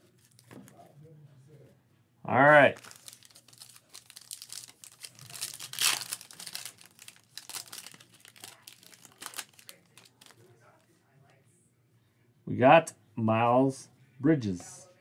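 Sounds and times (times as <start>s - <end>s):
foil wrapper crinkling and tearing: 2.8s - 10.4s.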